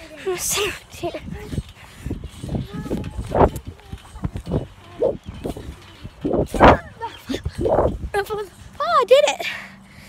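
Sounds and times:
noise rush on microphone: 0:00.0 - 0:09.0.

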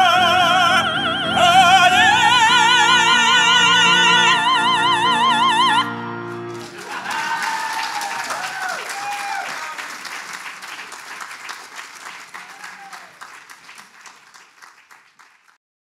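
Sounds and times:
audience applauding: 0:06.3 - 0:15.6
people cheering: 0:06.5 - 0:15.4.

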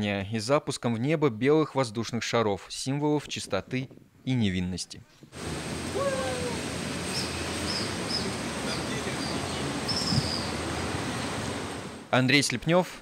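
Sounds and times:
steady outdoor noise: 0:05.3 - 0:12.2
short rising call: 0:05.4 - 0:12.0.

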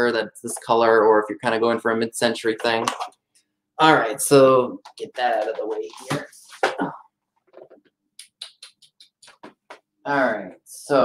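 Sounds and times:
objects clicking and knocking: 0:02.6 - 0:03.2.

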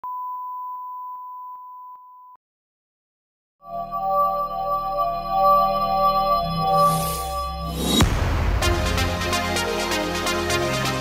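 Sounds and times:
steady test tone beep: 0:00.0 - 0:02.4.

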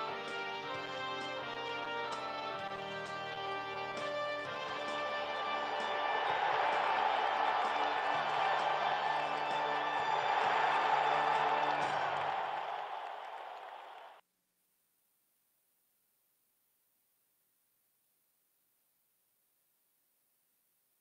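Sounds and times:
music: 0:00.0 - 0:14.1.

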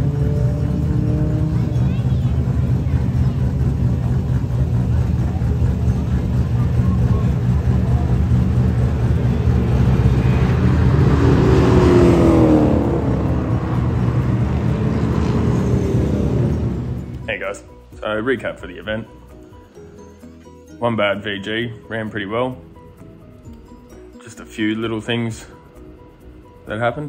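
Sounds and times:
engine revving: 0:00.0 - 0:17.8
car engines rumbling: 0:00.0 - 0:20.2.

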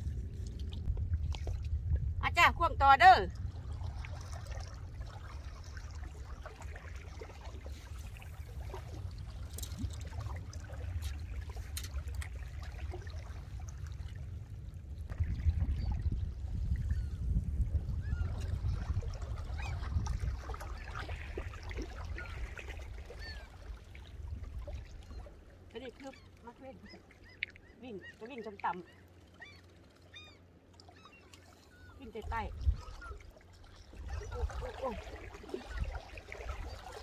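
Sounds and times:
wind rumble on microphone: 0:00.0 - 0:25.5, 0:31.8 - 0:37.0.

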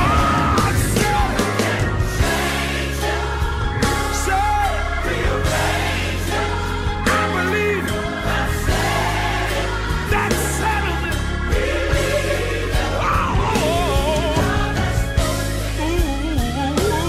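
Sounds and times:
gospel song with band: 0:00.0 - 0:17.0.

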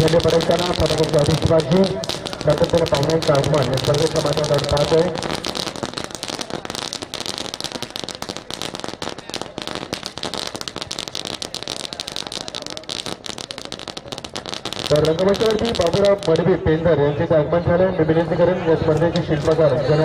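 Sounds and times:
firecrackers crackling: 0:00.0 - 0:16.8, 0:18.9 - 0:20.0.

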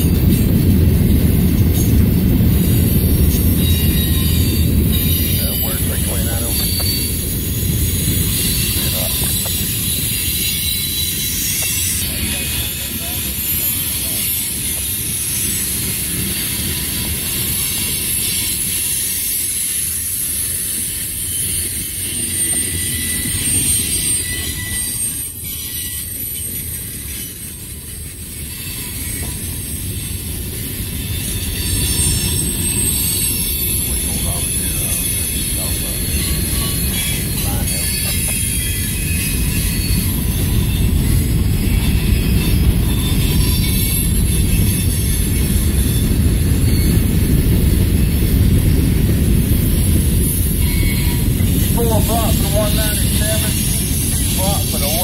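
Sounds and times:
freight train cars rolling past: 0:00.0 - 0:55.0.

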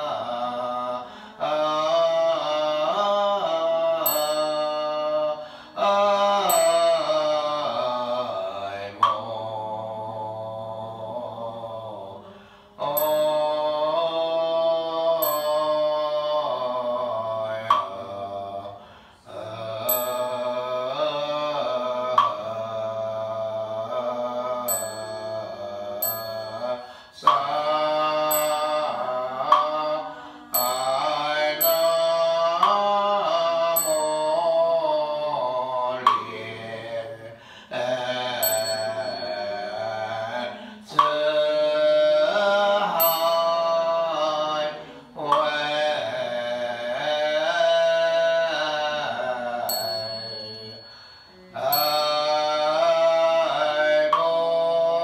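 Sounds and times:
group chanting in unison: 0:00.0 - 0:55.0
short high bell tings: 0:04.0 - 0:05.5, 0:06.4 - 0:07.3, 0:12.8 - 0:14.2, 0:15.2 - 0:16.1, 0:19.8 - 0:21.0, 0:24.7 - 0:27.4, 0:28.0 - 0:29.6, 0:30.3 - 0:32.8, 0:33.6 - 0:35.1, 0:38.2 - 0:40.9, 0:43.0 - 0:44.2, 0:49.6 - 0:53.0
knocks of struck instrument: 0:09.0 - 0:09.3, 0:17.6 - 0:18.0, 0:22.1 - 0:22.4, 0:28.3 - 0:29.9, 0:36.0 - 0:36.4.

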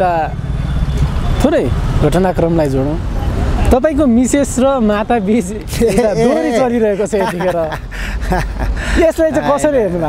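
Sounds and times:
low rumble of road traffic: 0:00.0 - 0:10.0
person talking: 0:05.5 - 0:07.9, 0:08.8 - 0:10.0.

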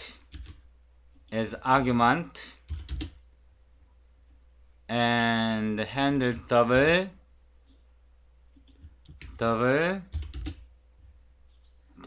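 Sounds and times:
computer keyboard keystrokes: 0:00.2 - 0:00.6, 0:02.7 - 0:03.2, 0:08.5 - 0:09.4, 0:10.1 - 0:10.7.

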